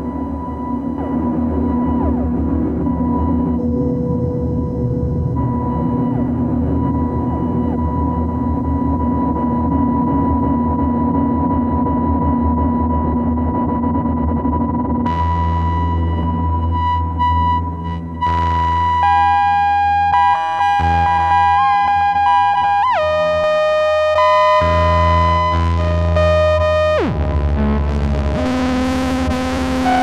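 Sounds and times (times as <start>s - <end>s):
low rumble: 0.0s - 11.2s
ambient synthesizer drone: 0.0s - 30.0s.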